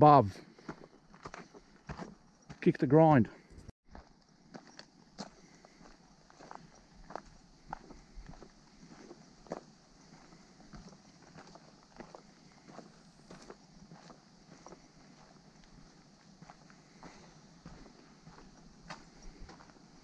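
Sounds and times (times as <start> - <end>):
footsteps on dirt trail: 0.0 - 20.0.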